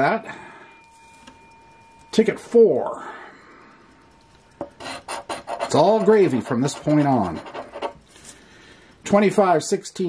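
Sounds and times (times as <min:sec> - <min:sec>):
coin scraping lottery ticket: 0:04.7 - 0:08.0.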